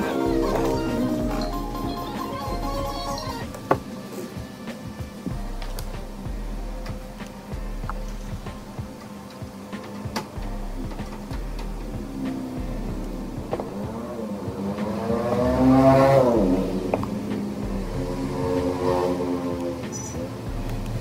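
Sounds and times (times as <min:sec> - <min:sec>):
vehicle engine passing by: 0:10.4 - 0:21.0.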